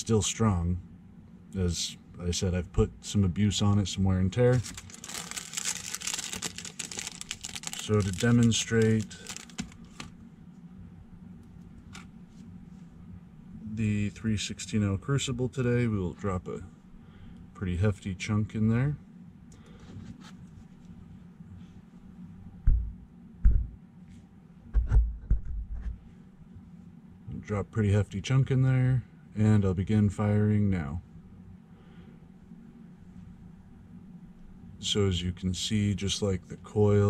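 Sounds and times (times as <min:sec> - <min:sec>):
low steady hum: 0:00.0 - 0:37.0.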